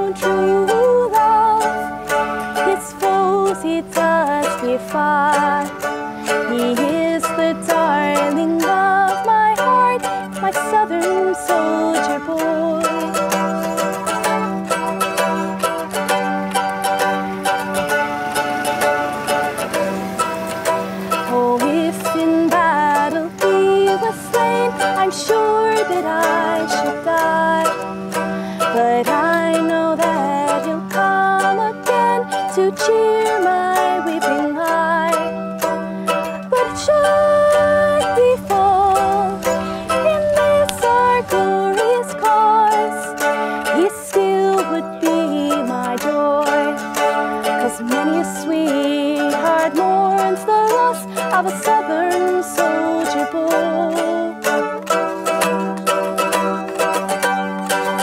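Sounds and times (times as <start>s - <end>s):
mandolin melody: 0.0s - 58.0s.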